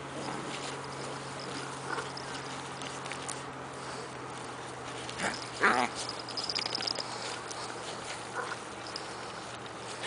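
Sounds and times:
puppies growling and yipping: 0.0 - 10.0.

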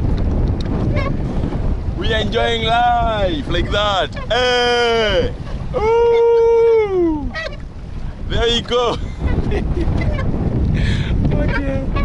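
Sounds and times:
waves around boat: 0.0 - 12.0
wind buffeting microphone: 0.0 - 12.0.

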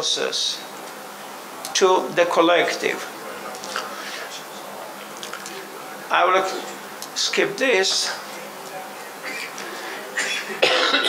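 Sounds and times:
man coughing: 10.2 - 11.0.

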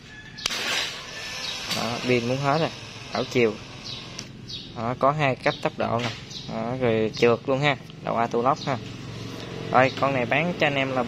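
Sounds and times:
cordless drill motor whirring: 0.4 - 4.4
drill trigger click: 0.4 - 4.4.

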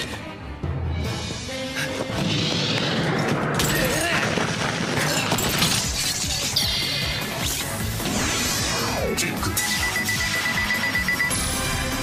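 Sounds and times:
soundtrack music: 5.3 - 12.0
rapidly pulsing electronic beep: 9.5 - 11.6.

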